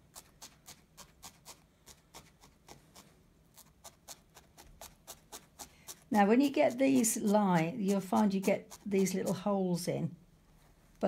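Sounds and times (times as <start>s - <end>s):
felting needle tapping: 0.0s - 9.6s.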